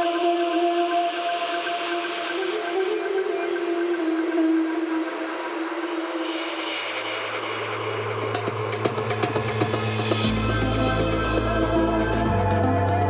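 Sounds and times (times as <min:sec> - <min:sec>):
held synth tone over hiss: 0:00.0 - 0:12.4
deep bass note: 0:09.4 - 0:13.0.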